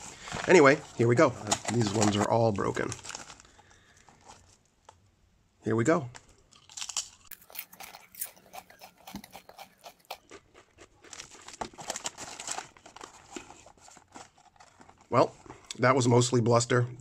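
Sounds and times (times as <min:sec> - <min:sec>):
potato chips crunching: 0:06.5 - 0:13.7.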